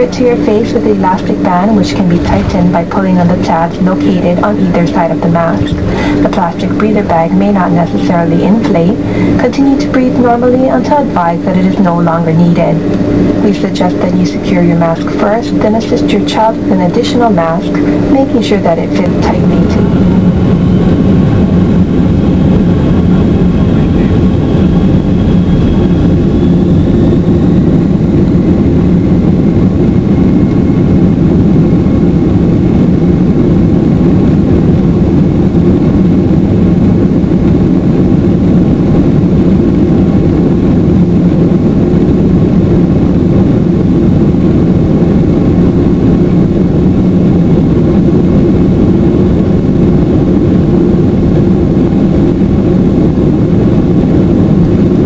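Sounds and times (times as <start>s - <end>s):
faint high whine: 0.0s - 55.0s
jet engines and wheels rumbling: 0.0s - 55.0s.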